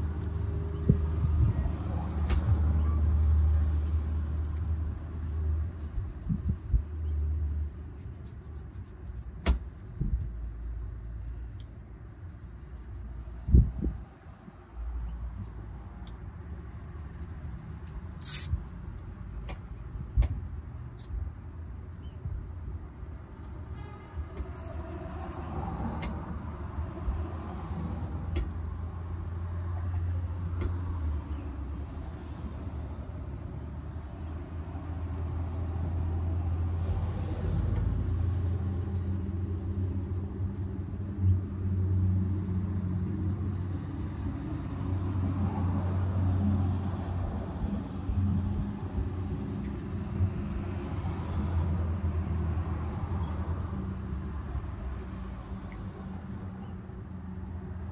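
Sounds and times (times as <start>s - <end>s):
road traffic rumble: 0.0s - 57.9s.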